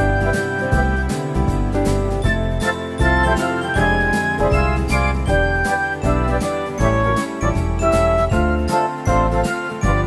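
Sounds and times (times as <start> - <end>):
bright jingling tune with beat: 0.0 - 10.0.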